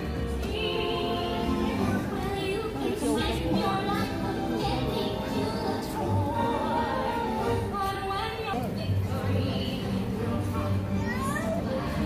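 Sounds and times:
background music: 0.0s - 12.0s
children's lively voices: 0.0s - 12.0s
crowd voices: 0.0s - 12.0s.

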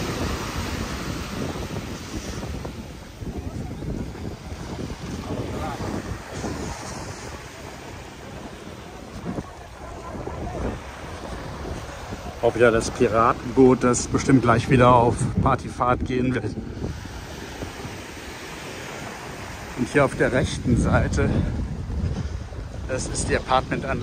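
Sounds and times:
small waves washing onto sand: 0.0s - 24.0s
wind buffeting microphone: 0.0s - 24.0s.

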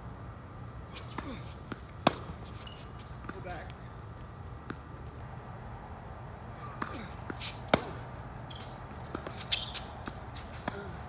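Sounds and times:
tennis racket hitting ball: 1.0s - 2.5s, 6.8s - 8.1s
ball bouncing on hard court: 1.0s - 3.7s, 6.6s - 11.0s.

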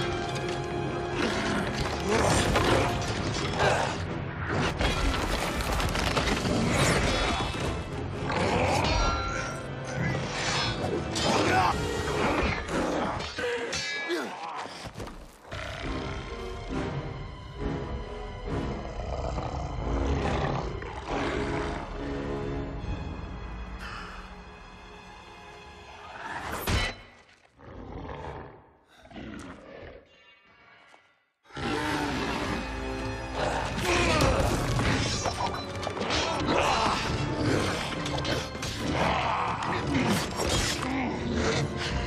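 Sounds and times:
orchestral film score: 0.0s - 27.8s, 31.5s - 42.0s
beast roaring: 18.7s - 22.2s, 27.6s - 30.2s, 31.5s - 35.2s.

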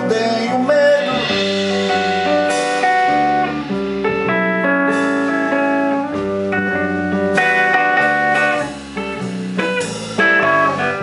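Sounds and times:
electric guitars playing: 0.0s - 11.0s.

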